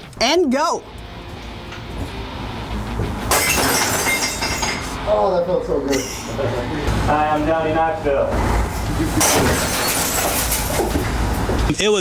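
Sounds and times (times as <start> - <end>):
glass shards breaking: 3.3 - 5.0, 9.2 - 10.9
glass shattering: 3.3 - 5.0, 9.2 - 10.9.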